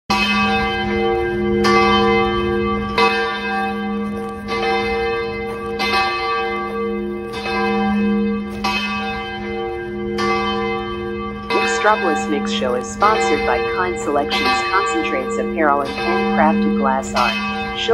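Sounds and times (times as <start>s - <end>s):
low bell tolling: 0.1s - 17.9s.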